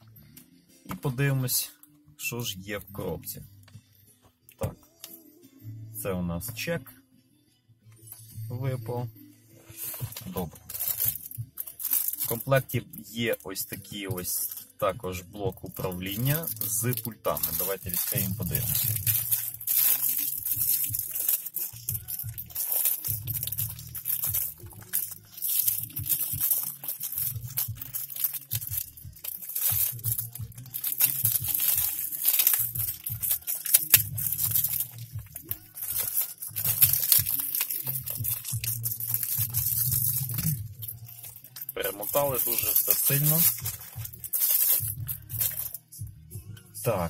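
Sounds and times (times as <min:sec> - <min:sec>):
background music: 0:00.0 - 0:47.0
packaging crinkling and tearing: 0:09.8 - 0:14.7, 0:15.6 - 0:45.8.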